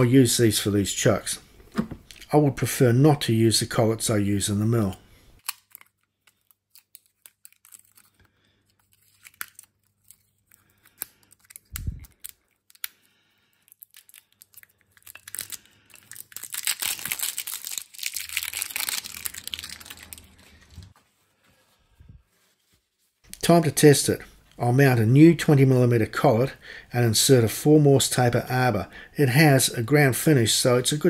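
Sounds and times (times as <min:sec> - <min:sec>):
paper towel rubbing: 0:20.4 - 0:23.3.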